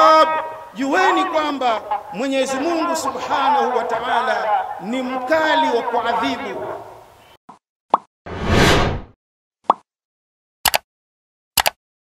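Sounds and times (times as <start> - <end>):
whoosh: 8.3 - 9.1.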